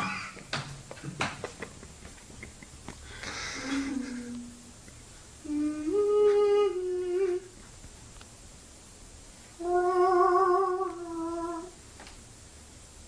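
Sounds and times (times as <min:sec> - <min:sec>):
man humming: 0:03.4 - 0:04.8, 0:05.4 - 0:07.5.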